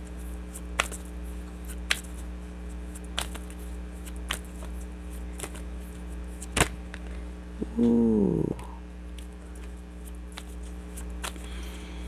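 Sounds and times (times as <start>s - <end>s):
steady low hum: 0.0s - 12.0s
cards shuffling: 0.2s - 2.2s, 2.9s - 7.2s, 9.2s - 11.6s.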